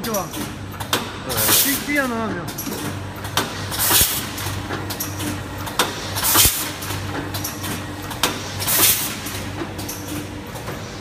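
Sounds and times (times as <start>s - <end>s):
mechanical clicks and clacks: 0.0s - 11.0s
packing machine humming: 0.0s - 11.0s.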